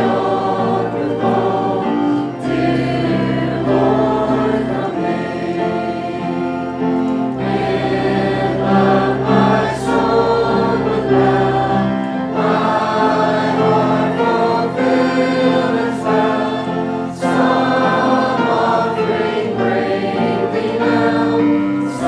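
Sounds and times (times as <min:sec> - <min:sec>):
choir singing a hymn: 0:00.0 - 0:22.0
keyboard accompaniment: 0:00.0 - 0:22.0.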